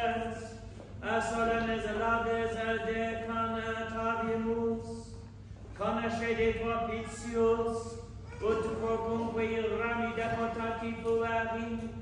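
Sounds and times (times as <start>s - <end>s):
man chanting a prayer: 0.0s - 5.2s, 5.8s - 12.0s.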